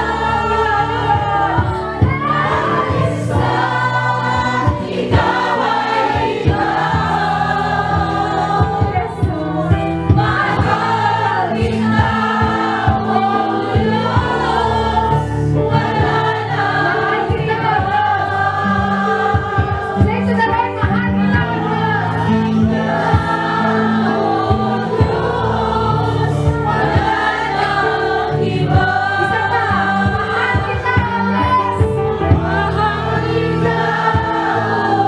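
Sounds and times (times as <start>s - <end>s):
choir singing: 0.0s - 20.3s, 21.1s - 35.0s
bass and drums backing: 0.0s - 35.0s.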